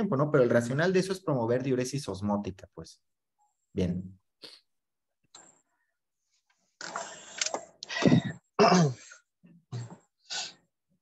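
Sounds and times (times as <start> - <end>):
person clearing throat and coughing: 8.0 - 10.0.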